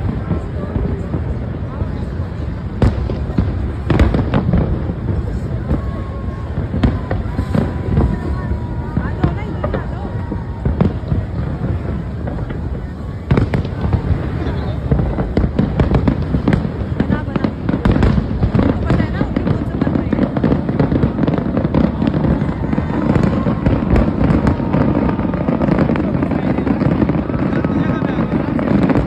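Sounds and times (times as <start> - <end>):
fireworks bangs and crackles: 0.0 - 29.0.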